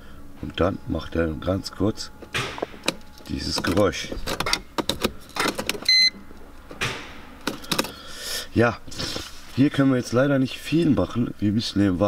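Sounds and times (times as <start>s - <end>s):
brief electronic beep: 5.9s - 6.2s.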